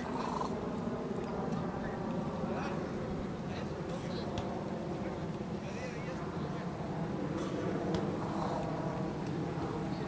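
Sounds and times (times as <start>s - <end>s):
faint distant voices: 0.0s - 10.0s
low outdoor rumble: 0.0s - 10.0s.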